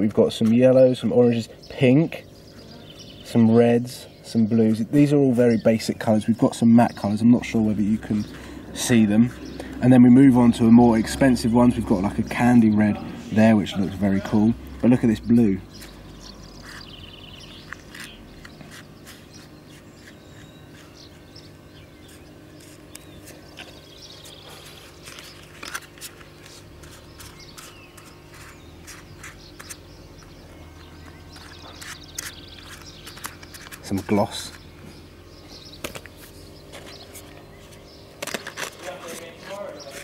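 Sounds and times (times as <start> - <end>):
steady low hum: 0.0 - 40.0
plastic swatches clicking and rustling: 24.8 - 29.8, 31.1 - 34.1, 38.2 - 39.5.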